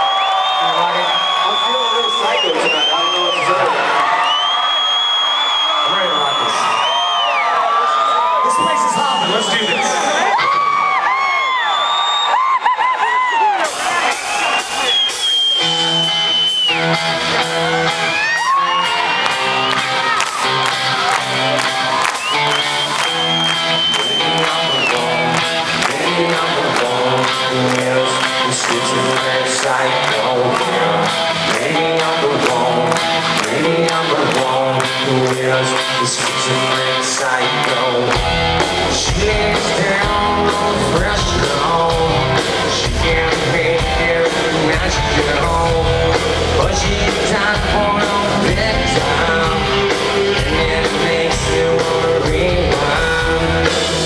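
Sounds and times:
rock band playing: 0.0s - 7.6s, 12.3s - 54.0s
crowd cheering and whooping: 0.0s - 43.2s
drums and cymbals: 13.4s - 25.9s, 37.5s - 54.0s.

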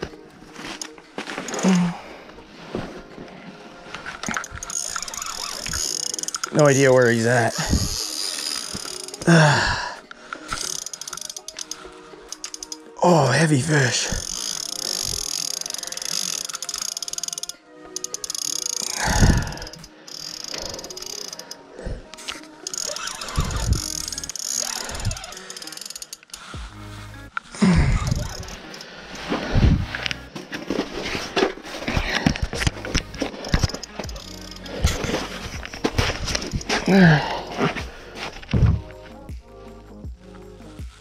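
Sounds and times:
background music: 0.0s - 41.0s
fishing reel clicking: 1.5s - 1.8s, 4.2s - 9.4s, 10.4s - 12.9s, 14.1s - 21.6s, 22.6s - 26.8s, 28.0s - 29.0s, 32.8s - 36.9s.

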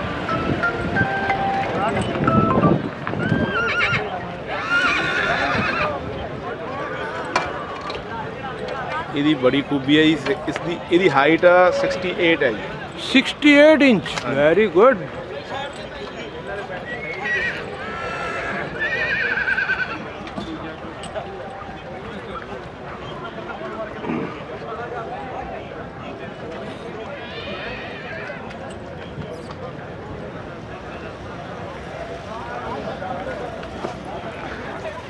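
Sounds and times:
horse whinnying: 3.2s - 6.0s, 17.0s - 20.0s, 27.2s - 28.4s.

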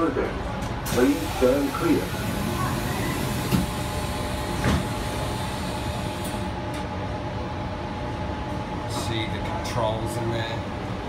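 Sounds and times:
train carriage hum and rumble: 0.0s - 11.0s.

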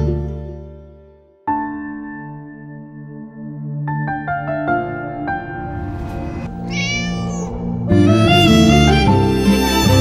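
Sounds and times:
soft piano music: 0.0s - 5.7s
kitten meowing: 6.6s - 7.6s.

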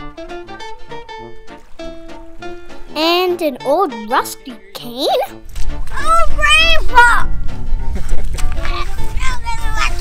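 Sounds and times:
plucked string melody: 0.0s - 10.0s.

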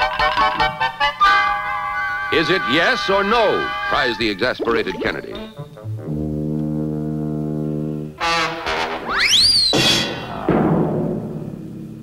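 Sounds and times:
brass notes: 0.1s - 9.4s.

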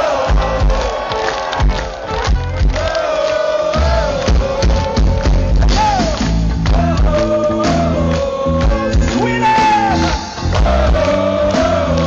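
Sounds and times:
crowd noise: 0.0s - 12.0s
heavy metal band playing: 3.7s - 12.0s.

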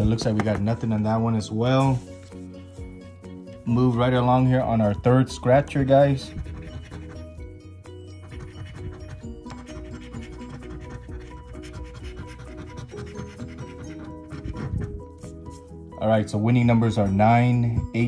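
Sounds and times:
background music: 0.0s - 18.0s
scratching a scratch-off ticket: 6.2s - 7.5s, 8.1s - 15.6s.

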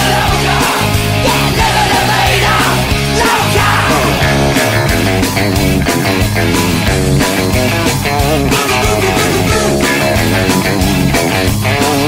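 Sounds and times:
bass and drums: 0.0s - 12.0s
electric guitar line: 0.0s - 12.0s.

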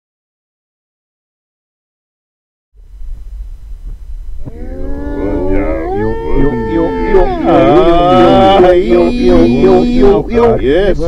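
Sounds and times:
low rumble: 2.8s - 11.0s
wordless wavering vocal notes: 4.4s - 11.0s.

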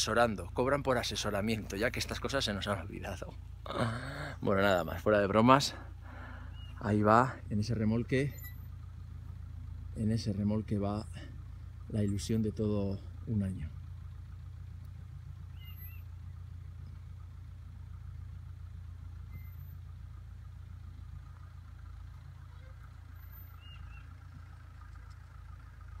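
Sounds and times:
vehicle engine drone: 0.0s - 26.0s.

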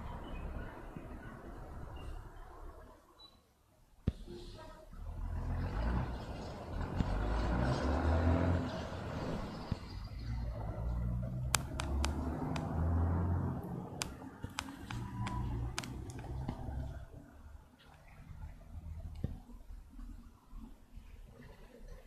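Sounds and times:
traffic rumble: 0.0s - 22.0s
sharp clicks: 11.5s - 12.8s, 14.0s - 16.6s.

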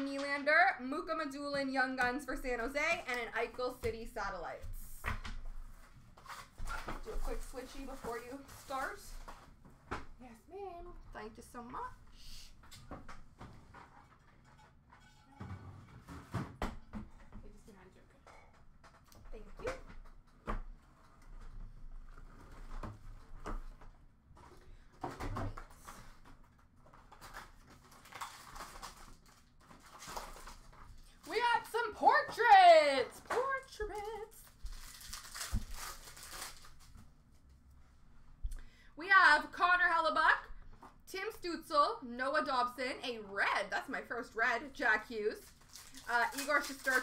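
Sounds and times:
foil wrapper rustling: 26.9s - 31.7s, 33.8s - 37.1s, 45.3s - 47.0s.

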